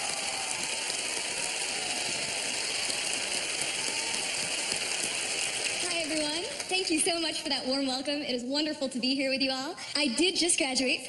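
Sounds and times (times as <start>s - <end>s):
audience applauding: 0.0s - 7.1s.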